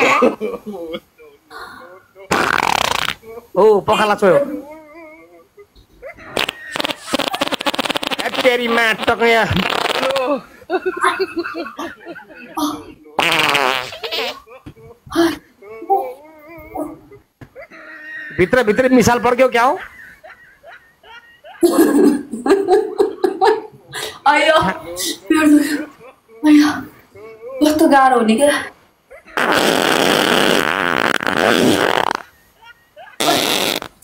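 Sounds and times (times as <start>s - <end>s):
fart sound: 2.3s - 3.2s, 6.3s - 10.4s, 13.2s - 14.4s, 29.4s - 32.4s, 33.2s - 34.0s.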